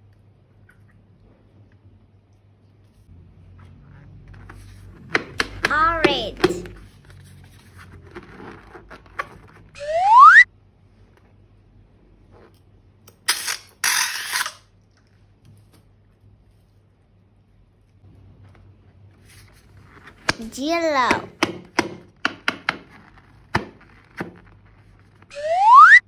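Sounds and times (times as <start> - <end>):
high chirpy cartoon voice: 5.6 - 6.7, 20.4 - 21.3
rising slide whistle boing: 9.8 - 10.4, 25.3 - 26.0.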